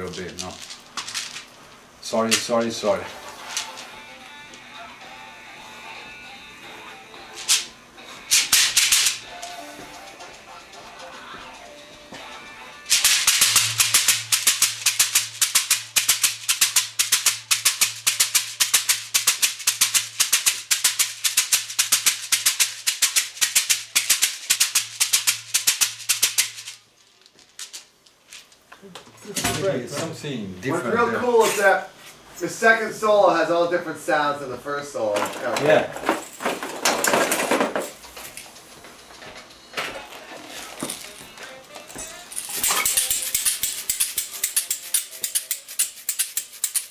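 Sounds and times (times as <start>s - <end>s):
shaker rattling: 0.0s - 4.7s, 7.3s - 28.6s, 40.4s - 46.9s.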